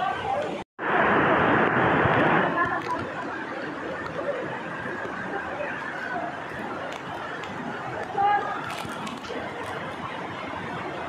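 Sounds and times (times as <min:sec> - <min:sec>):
people calling and chattering: 0:00.0 - 0:00.6, 0:02.4 - 0:11.0
river water rushing: 0:00.0 - 0:11.0.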